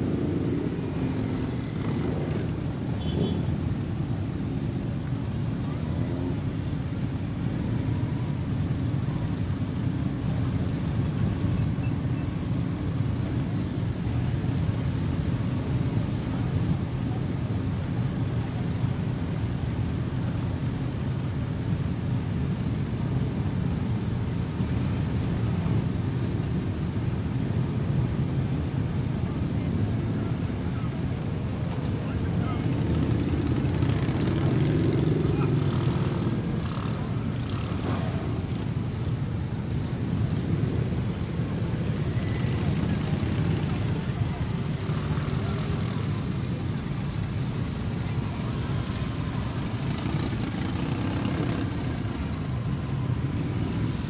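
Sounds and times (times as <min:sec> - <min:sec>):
motorcycle engines rumbling past: 0:00.0 - 0:19.0, 0:22.2 - 0:54.0.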